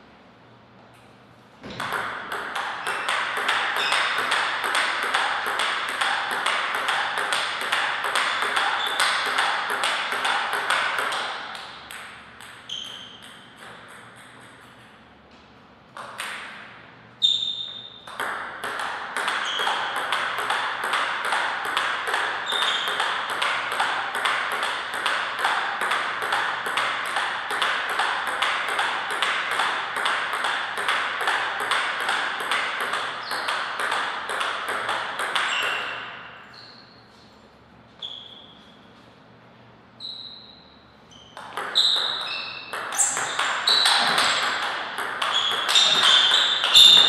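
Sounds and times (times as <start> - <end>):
table tennis ball hits: 1.6 - 36.8, 41.2 - 47.0.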